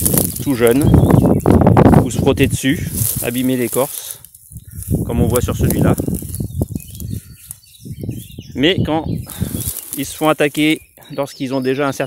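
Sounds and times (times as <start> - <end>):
dry grass rustling and crackling: 0.0 - 8.4, 9.2 - 11.0
wind rumble on microphone: 0.0 - 10.2.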